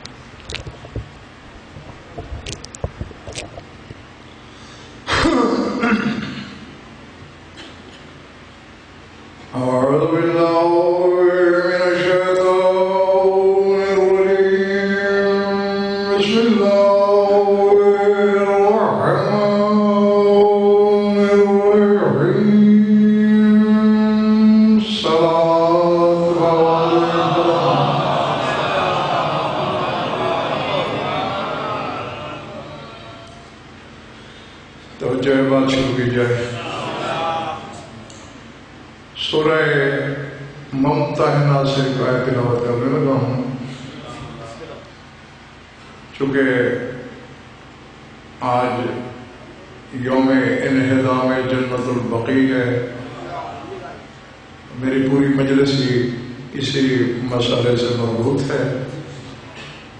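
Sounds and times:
man chanting into microphone: 9.5s - 28.0s.

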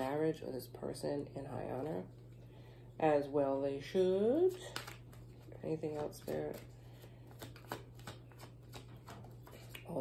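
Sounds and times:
cards being shuffled: 4.5s - 10.0s.

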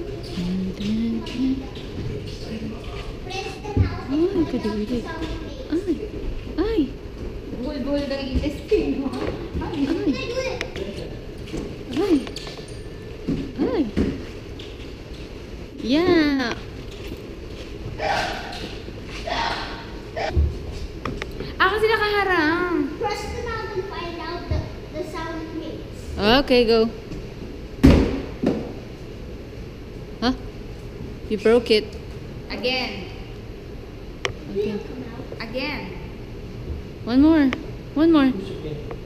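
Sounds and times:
indistinct voices in echoing hall: 18.0s - 20.4s
hard thump on exhibit box: 27.8s - 28.7s.

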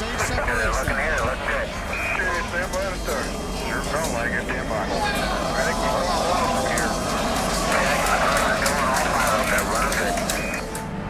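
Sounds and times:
indistinct voices: 0.0s - 10.9s
steady rumbling noise: 0.0s - 11.0s.

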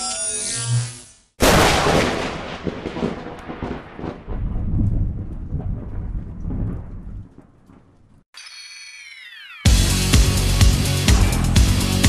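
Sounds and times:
thunderclap: 1.4s - 8.2s.

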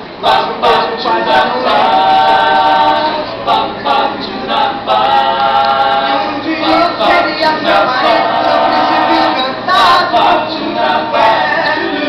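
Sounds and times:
a cappella group singing in harmony: 0.0s - 12.0s.

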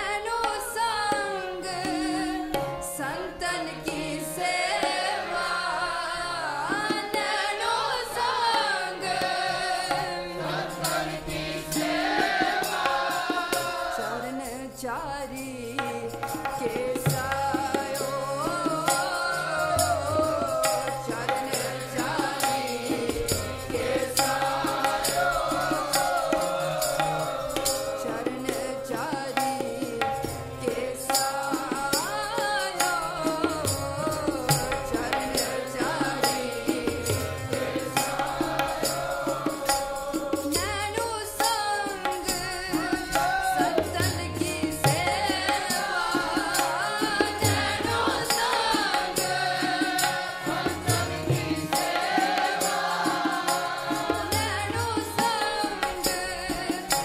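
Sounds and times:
woman singing: 0.0s - 11.8s, 12.6s - 51.8s, 53.0s - 57.0s
harmonium chords: 0.0s - 57.0s.

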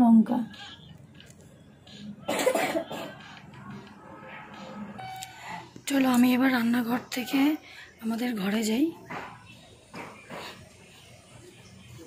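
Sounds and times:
person coughing: 2.2s - 3.2s.

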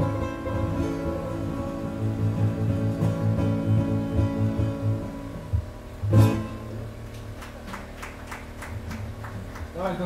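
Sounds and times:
light applause handclaps: 7.0s - 10.0s.

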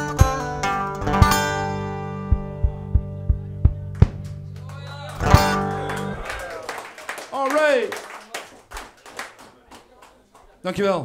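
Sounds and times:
audience clapping: 3.7s - 10.6s.

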